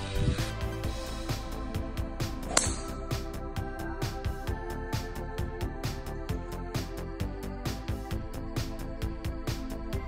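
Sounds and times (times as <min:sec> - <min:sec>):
background music with beat: 0:00.0 - 0:10.0
golf driver striking ball: 0:02.4 - 0:03.1.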